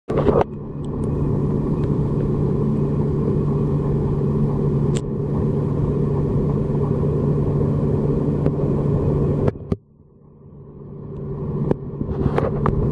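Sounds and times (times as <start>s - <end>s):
underwater low hum and rumble: 0.1s - 12.9s.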